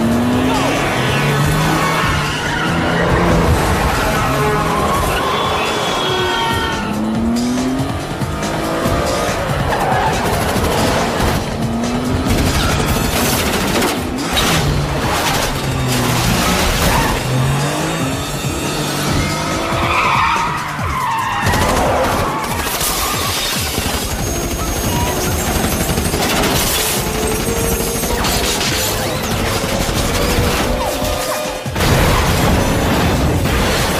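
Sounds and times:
car engine revving: 0:00.0 - 0:33.9
tires squealing: 0:00.0 - 0:33.9.

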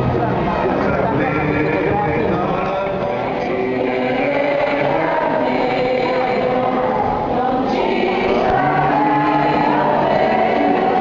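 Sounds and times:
choir singing a hymn: 0:01.3 - 0:11.0.

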